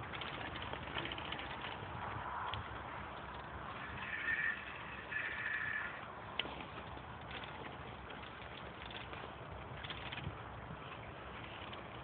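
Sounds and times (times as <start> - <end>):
bicycle rattles: 0.0 - 12.0
bicycle rolling on road: 0.0 - 12.0.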